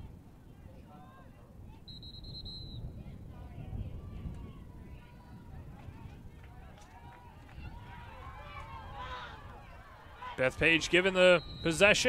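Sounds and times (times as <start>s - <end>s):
low rumble of field noise: 0.0s - 12.0s
referee's whistle: 1.9s - 2.9s, 11.2s - 12.0s.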